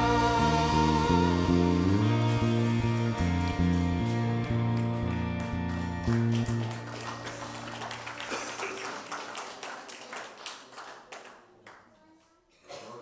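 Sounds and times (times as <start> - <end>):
band chord on guitars and bass: 0.0 - 7.5
people clapping: 3.1 - 12.2.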